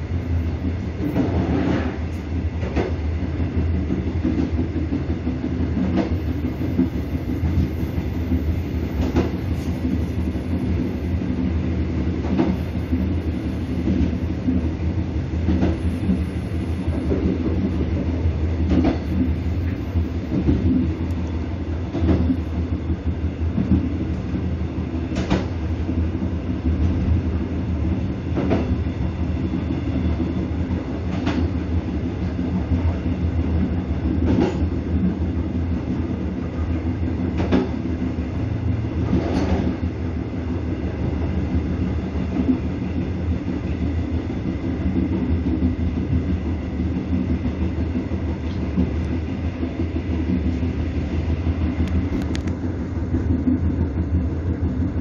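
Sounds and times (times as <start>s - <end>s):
train low rumble: 0.0s - 55.0s.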